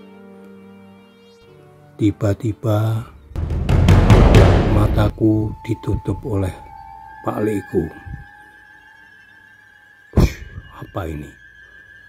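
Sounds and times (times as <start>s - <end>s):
narration: 2.0s - 8.2s, 10.2s - 11.4s
low held drone tone: 4.3s - 12.0s.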